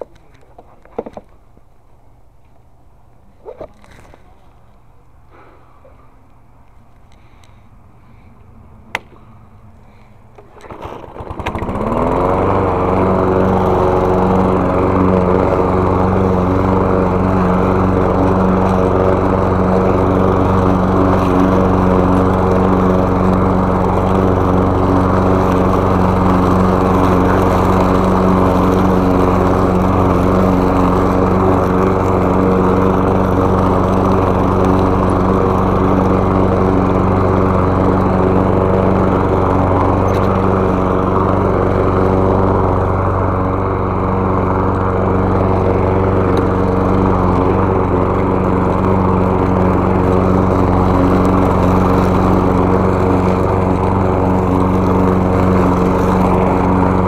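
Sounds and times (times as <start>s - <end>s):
lawn mower engine: 7.2s - 57.0s.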